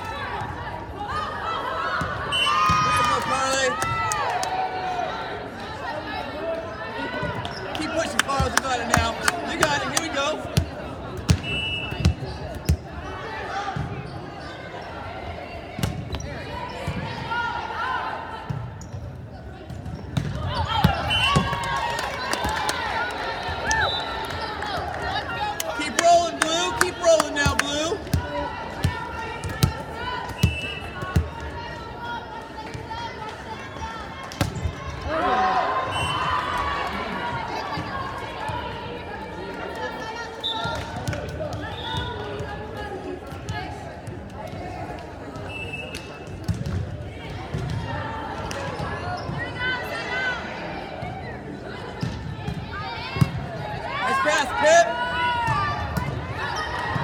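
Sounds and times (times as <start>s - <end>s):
people shouting and cheering: 0.0s - 12.2s, 20.3s - 45.7s, 47.1s - 57.0s.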